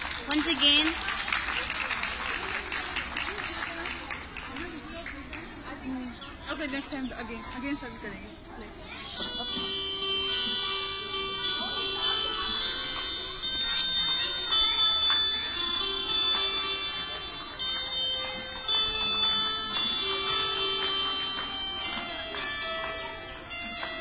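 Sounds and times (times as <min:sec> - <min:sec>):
electronic keyboard melody: 0:09.0 - 0:24.0.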